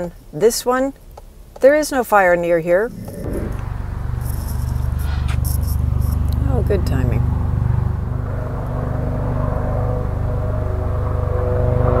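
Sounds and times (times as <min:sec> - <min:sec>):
helicopter rotor beating: 0:02.4 - 0:12.0.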